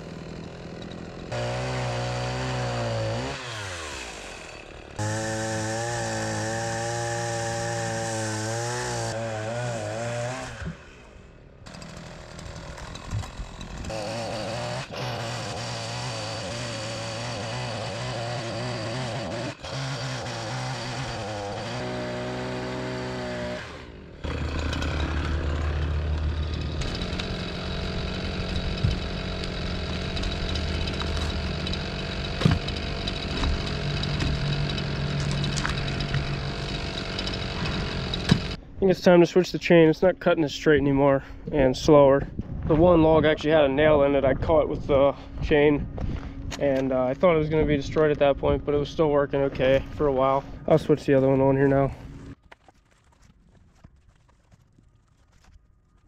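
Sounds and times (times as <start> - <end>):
chainsaw cutting logs: 0.0 - 38.6, 45.2 - 53.8.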